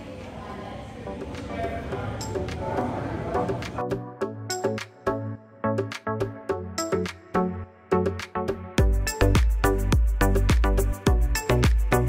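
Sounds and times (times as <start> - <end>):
faint indistinct voices: 0.0 - 3.9
background music: 1.0 - 12.0.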